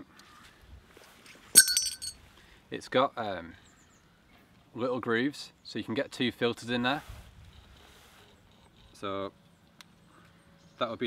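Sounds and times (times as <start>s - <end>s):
sharp metallic clink: 1.6s - 2.2s.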